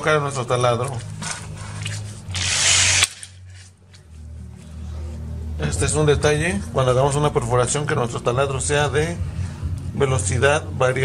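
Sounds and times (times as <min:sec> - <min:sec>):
electric drill burst: 0:02.3 - 0:03.4.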